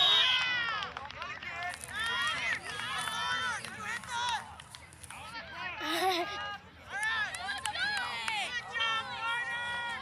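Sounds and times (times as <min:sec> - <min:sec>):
people shouting and calling out: 0:05.2 - 0:10.0.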